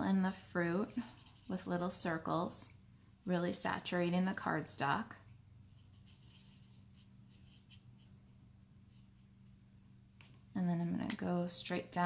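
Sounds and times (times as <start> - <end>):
low steady hum: 0.0 - 12.0
marker tip scratching on paper: 0.8 - 1.7.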